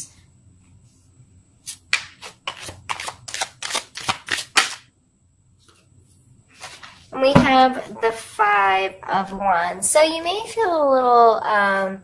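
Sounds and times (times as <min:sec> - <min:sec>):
cards being shuffled: 0:01.9 - 0:04.8.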